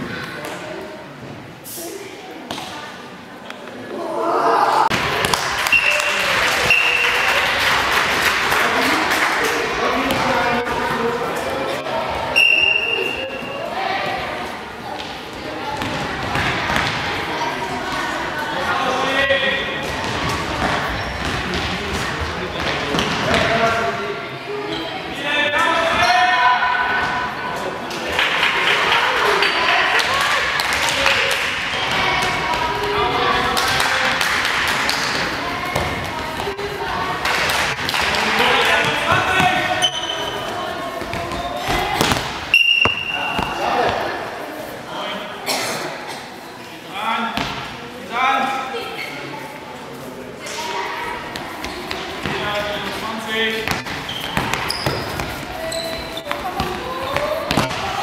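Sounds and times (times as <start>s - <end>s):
ball bouncing on hall floor: 4.9s - 6.8s, 10.0s - 10.4s, 15.0s - 17.0s, 19.8s - 23.6s, 41.0s - 44.1s, 53.6s - 58.0s.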